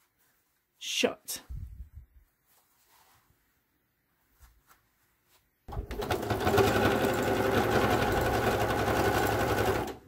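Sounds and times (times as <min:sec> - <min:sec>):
denim fabric rustling: 0:00.0 - 0:05.7.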